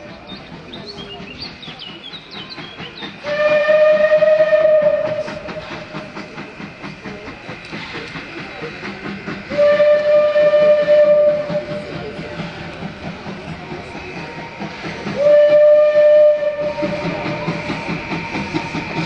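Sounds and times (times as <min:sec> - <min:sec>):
train running noise: 0:00.0 - 0:19.0
steam locomotive whistle: 0:03.2 - 0:06.3, 0:09.5 - 0:12.7, 0:14.2 - 0:19.0.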